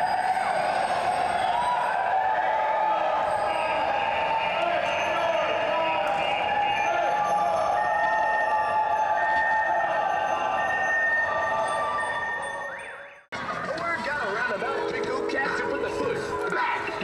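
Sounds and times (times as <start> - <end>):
voices echoing: 0.0 - 17.0.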